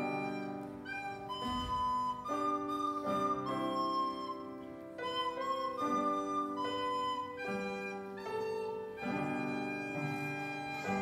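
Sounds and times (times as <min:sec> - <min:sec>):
piano chords: 0:00.0 - 0:11.0
recorder melody: 0:00.0 - 0:11.0.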